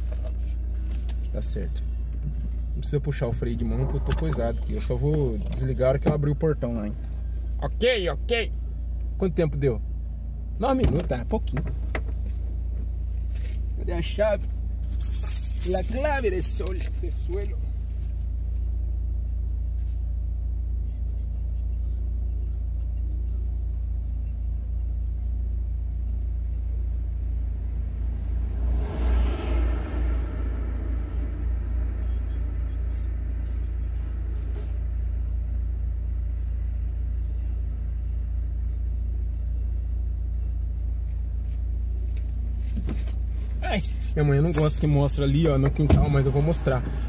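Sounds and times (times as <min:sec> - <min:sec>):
car engine idling: 0:00.0 - 0:47.0.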